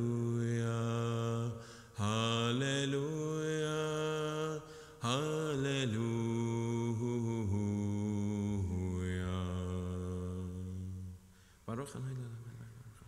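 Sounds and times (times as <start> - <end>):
man chanting prayer: 11.7 - 12.8.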